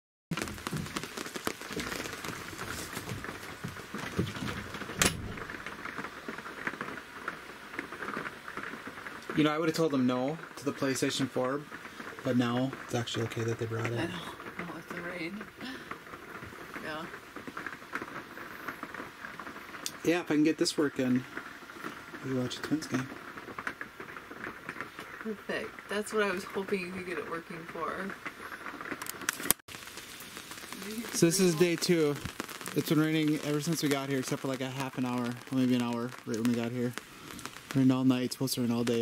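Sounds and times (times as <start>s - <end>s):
rain pattering on a roof: 0.3s - 39.0s.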